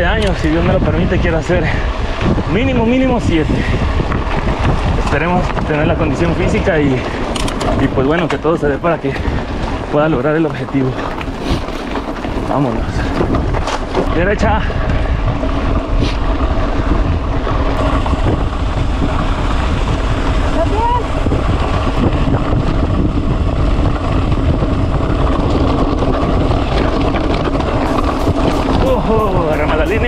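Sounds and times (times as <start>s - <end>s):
bike tyres rolling over gravel: 0.0s - 30.0s
wind buffeting microphone: 0.0s - 30.0s.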